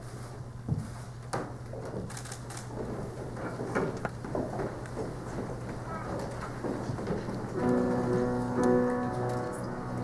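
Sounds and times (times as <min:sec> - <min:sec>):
rustling and shuffling of group: 0:00.0 - 0:10.0
piano playing sustained chords: 0:07.5 - 0:10.0.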